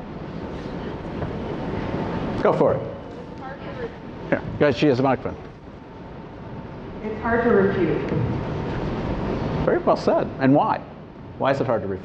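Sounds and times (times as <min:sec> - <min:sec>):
low rumbling room noise: 0:00.0 - 0:12.0.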